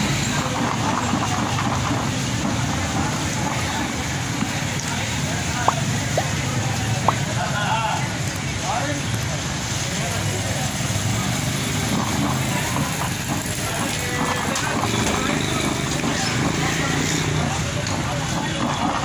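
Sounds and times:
traffic rumbling past: 0.0s - 19.0s
voices chattering: 0.0s - 19.0s.

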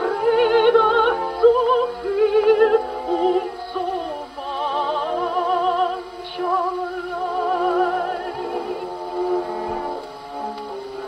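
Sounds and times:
soprano singing on old record: 0.0s - 11.0s.

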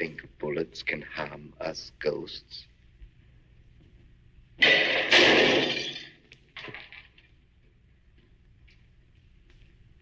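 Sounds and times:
loud crash: 4.6s - 6.2s.

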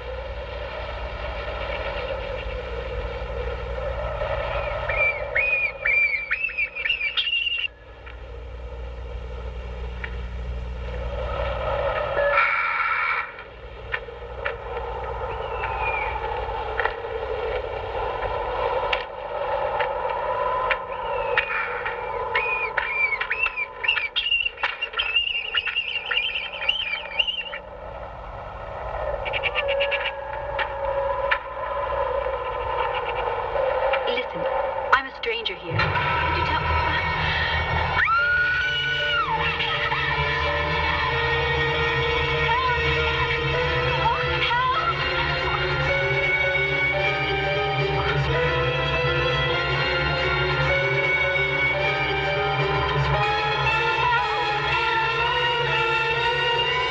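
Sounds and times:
wavering electronic drone: 0.0s - 56.9s.

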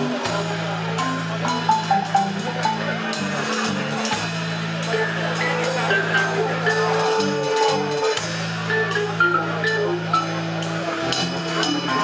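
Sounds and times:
light cymbal strikes: 0.0s - 12.0s
rock band playing: 0.0s - 12.0s.

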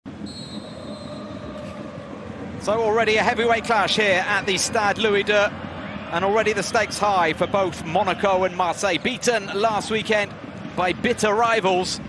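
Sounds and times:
stadium crowd noise: 0.1s - 12.0s
referee's whistle: 0.2s - 1.4s.

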